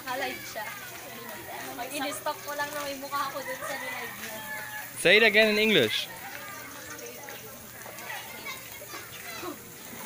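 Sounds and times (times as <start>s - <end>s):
faint chatter of people: 0.0s - 10.0s.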